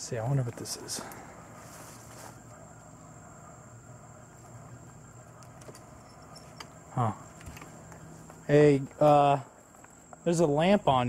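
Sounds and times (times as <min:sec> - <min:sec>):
faint low hum: 0:00.0 - 0:11.0
high steady whine: 0:00.0 - 0:11.0
light rustles and clicks: 0:05.2 - 0:08.4.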